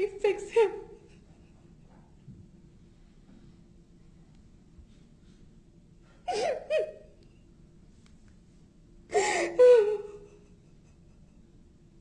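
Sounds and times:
woman crying: 6.3s - 7.2s, 9.1s - 11.1s.

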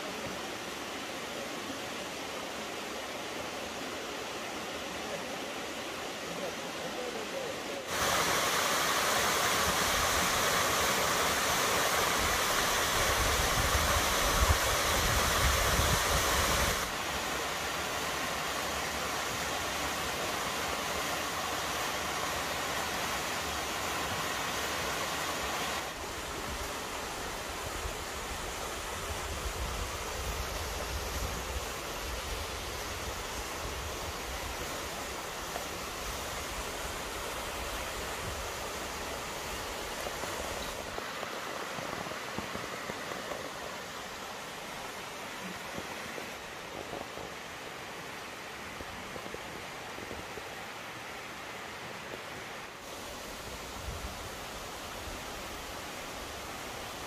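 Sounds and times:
waterfall rushing: 0.0s - 57.0s.

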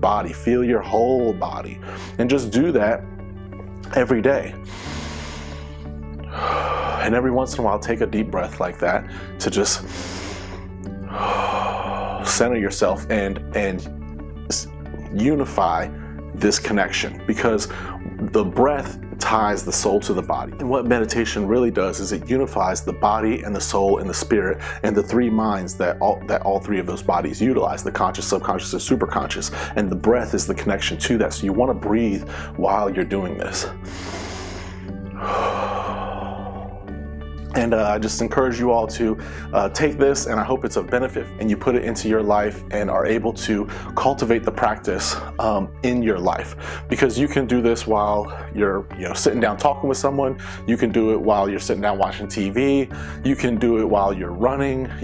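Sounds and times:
soft background music: 0.0s - 55.0s
man breathing deeply: 1.8s - 2.2s, 4.6s - 7.1s, 9.1s - 12.4s, 17.7s - 18.0s, 33.8s - 37.4s.

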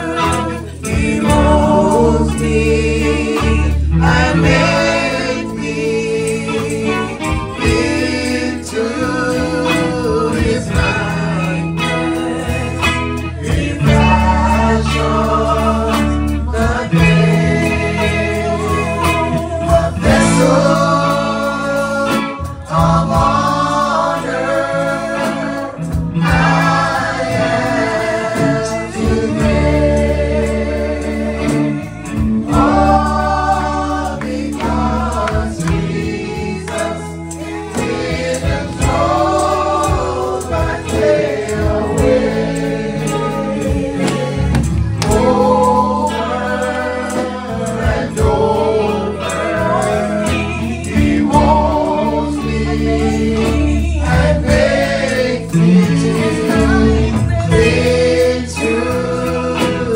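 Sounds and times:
backing singers: 0.0s - 59.9s
band with guitar and bass: 0.0s - 59.9s
man singing lead: 0.0s - 59.9s.

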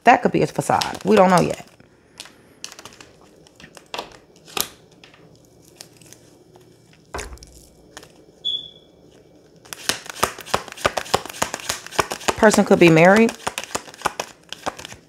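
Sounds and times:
cards being shuffled: 0.7s - 4.8s, 9.0s - 15.0s.

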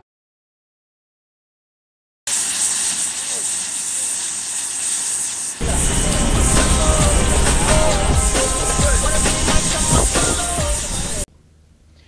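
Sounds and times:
gas torch hissing: 2.3s - 11.3s.

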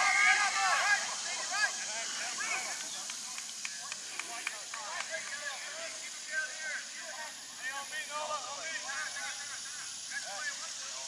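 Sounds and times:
distant voices calling out: 0.0s - 11.0s
steady high hiss: 0.0s - 11.0s.

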